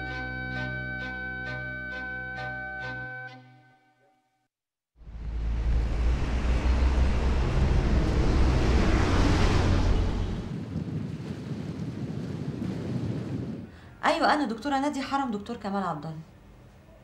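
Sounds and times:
sea surf washing in: 5.1 - 13.6
wind blowing across microphone: 5.8 - 13.9.

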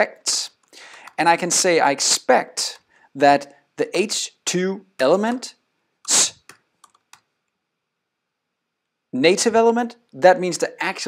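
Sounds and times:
computer keyboard typing: 6.4 - 7.3.

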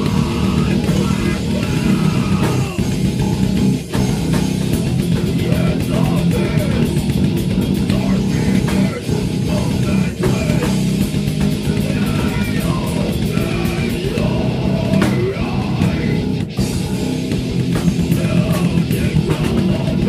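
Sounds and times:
rock song with electric guitar: 0.0 - 20.0.

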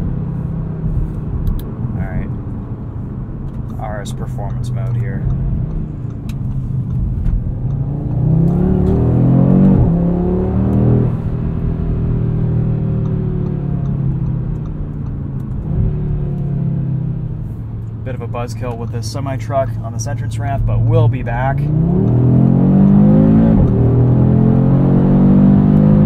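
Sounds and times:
car engine accelerating: 0.0 - 26.0.

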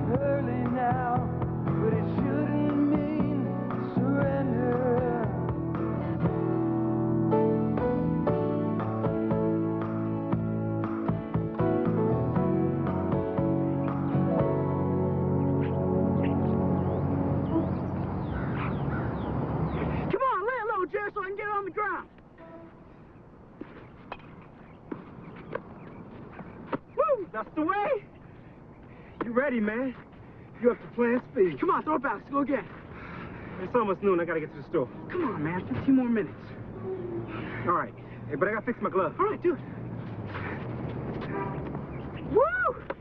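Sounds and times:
outdoor background noise: 0.0 - 43.0
birds chirping: 13.1 - 42.4.

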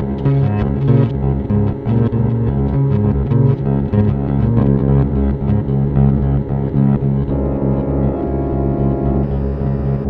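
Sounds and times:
electric guitar droning tones: 0.0 - 10.0.

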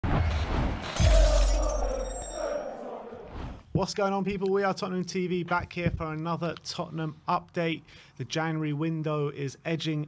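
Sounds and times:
glass shattering: 1.0 - 2.4
thin high ringing tones: 1.0 - 2.7.

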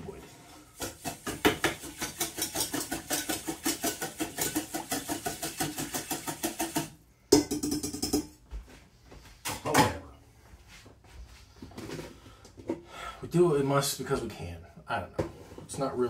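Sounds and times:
whisk clattering in a bowl: 0.8 - 8.3.

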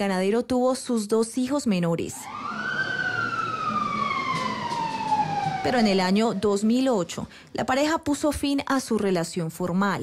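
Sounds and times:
background noise: 0.0 - 10.0
siren wailing: 2.1 - 7.1.

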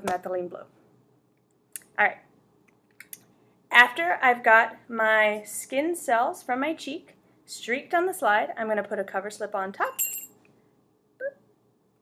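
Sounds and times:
glassware clinking: 10.0 - 10.4.

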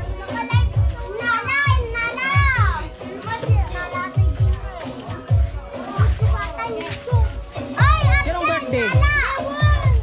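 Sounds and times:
children's voices: 0.0 - 10.0
music with steady bass beat: 0.0 - 10.0.

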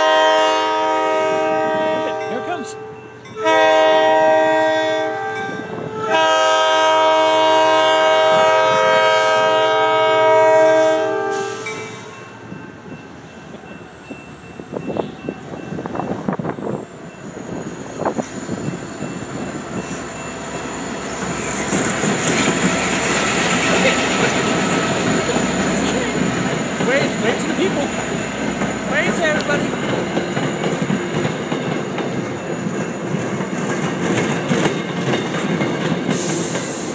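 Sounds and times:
train air horn: 0.0 - 12.0
train rumbling: 0.0 - 36.9.

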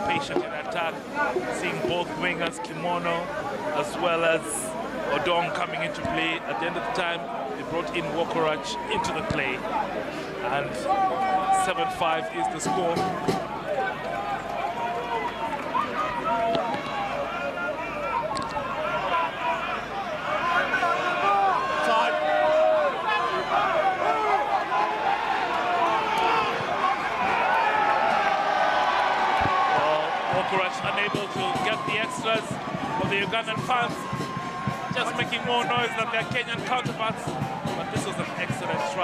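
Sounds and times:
rhythmic beats: 0.0 - 2.3, 30.4 - 39.0
crowd cheering and chanting: 0.0 - 39.0.

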